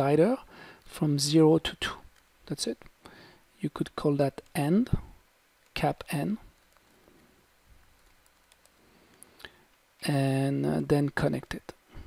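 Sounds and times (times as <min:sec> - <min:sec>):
soft keyboard typing: 0:06.4 - 0:07.1, 0:07.8 - 0:09.5.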